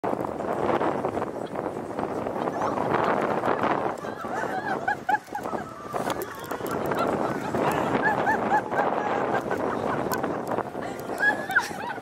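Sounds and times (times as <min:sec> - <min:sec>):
wind rumble on microphone: 0:00.0 - 0:12.0
woman laughing hard: 0:02.8 - 0:12.0.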